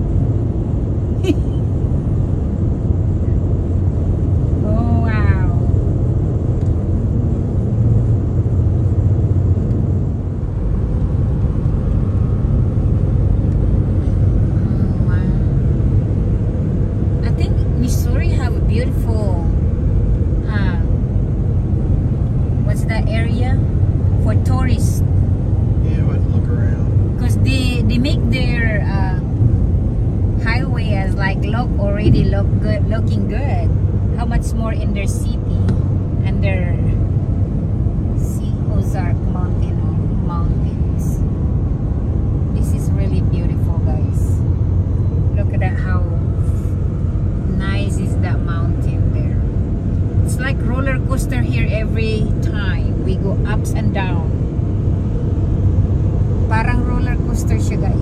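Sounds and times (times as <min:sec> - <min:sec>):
car cabin road rumble: 0:00.0 - 0:58.0
people talking: 0:01.2 - 0:01.6, 0:04.6 - 0:05.7, 0:14.5 - 0:15.6, 0:17.2 - 0:19.6, 0:20.4 - 0:21.0, 0:22.6 - 0:23.6, 0:24.2 - 0:25.0, 0:25.8 - 0:29.3, 0:30.4 - 0:37.0, 0:38.2 - 0:41.2, 0:42.6 - 0:44.4, 0:45.4 - 0:46.6, 0:47.5 - 0:49.4, 0:50.3 - 0:54.3, 0:56.5 - 0:58.0
voices: 0:04.6 - 0:05.8, 0:14.5 - 0:15.6, 0:17.2 - 0:19.6, 0:20.4 - 0:21.0, 0:22.6 - 0:23.6, 0:24.2 - 0:25.0, 0:25.8 - 0:29.4, 0:30.4 - 0:37.0, 0:38.2 - 0:41.2, 0:42.6 - 0:44.4, 0:45.4 - 0:46.7, 0:47.4 - 0:49.5, 0:50.3 - 0:54.4, 0:56.5 - 0:58.0.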